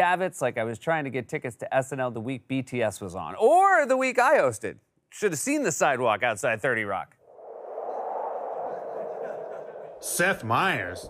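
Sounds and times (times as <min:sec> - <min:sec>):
hollow whooshing noise: 0:07.3 - 0:11.0.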